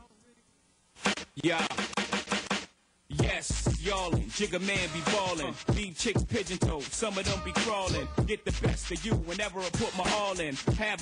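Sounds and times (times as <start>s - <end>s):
chopped hip hop hits: 1.0s - 11.0s
hip hop beat with heavy bass: 1.0s - 11.0s
person rapping: 1.4s - 2.0s, 3.1s - 11.0s.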